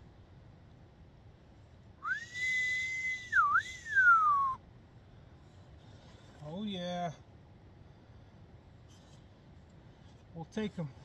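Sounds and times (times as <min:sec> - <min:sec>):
person whistling: 0:02.0 - 0:04.6.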